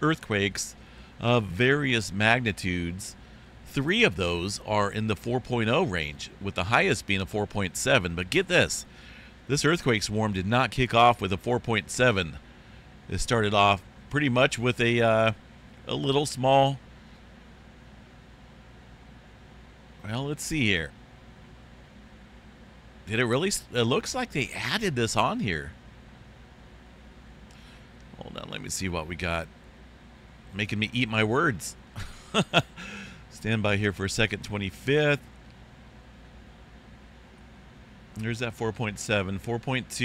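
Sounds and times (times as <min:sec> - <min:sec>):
faint background hiss: 0:00.0 - 0:40.0
low hum: 0:00.0 - 0:40.0.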